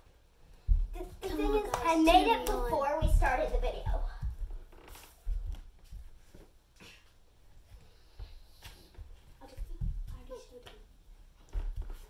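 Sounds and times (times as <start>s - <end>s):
child's voice: 1.0s - 4.3s, 9.4s - 10.8s.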